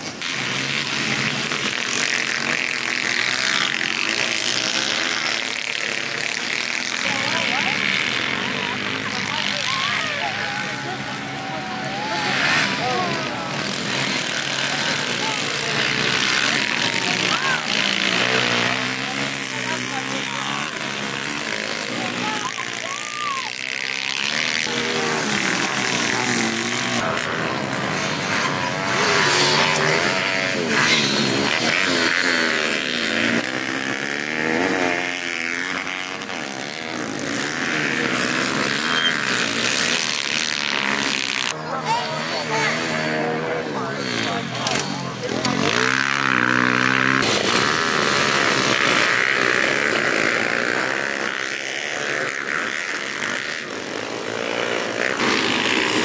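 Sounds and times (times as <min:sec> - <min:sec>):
small motorbike engines revving: 0:00.0 - 0:56.0.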